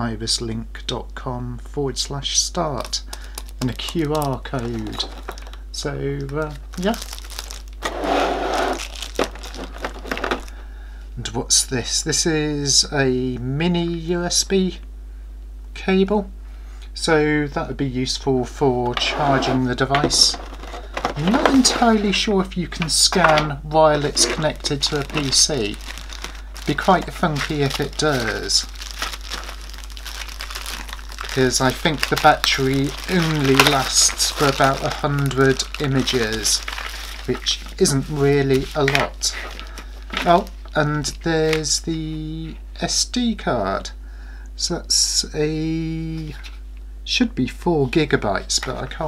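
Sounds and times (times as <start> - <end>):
plastic packaging crinkling: 2.8 - 10.6, 19.3 - 41.9.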